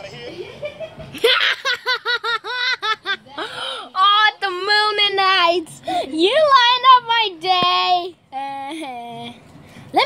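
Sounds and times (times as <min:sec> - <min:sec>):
high-pitched laughter: 0:00.1 - 0:03.2.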